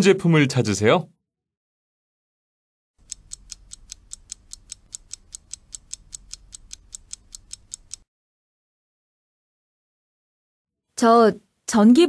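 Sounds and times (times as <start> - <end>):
fast timer ticking: 3.0 - 8.1.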